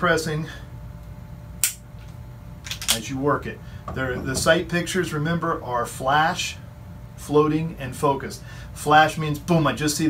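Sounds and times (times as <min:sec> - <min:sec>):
pistol dry fire click: 0:01.6 - 0:01.8.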